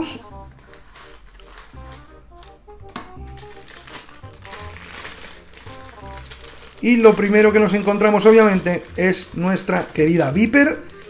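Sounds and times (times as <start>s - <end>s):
plastic bag crinkling: 0.0s - 11.0s
quiet background music: 0.0s - 11.0s.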